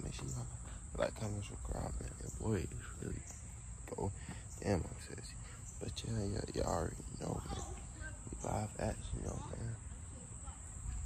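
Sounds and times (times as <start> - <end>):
man speaking: 0.0 - 7.7, 8.3 - 9.8
high-pitched insect drone: 0.0 - 11.0.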